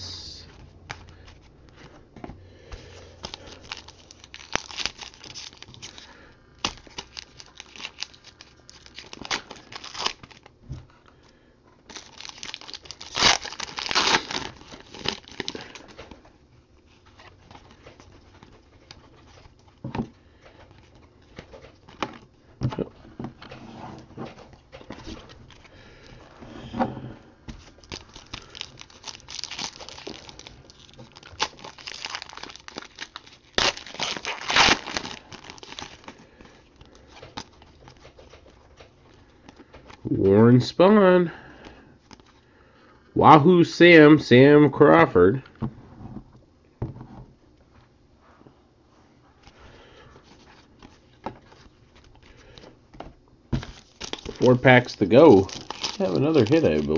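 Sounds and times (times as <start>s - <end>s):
foil wrapper tearing and crinkling: 3.2s - 10.5s, 11.9s - 16.0s, 27.7s - 38.0s, 53.6s - 56.9s.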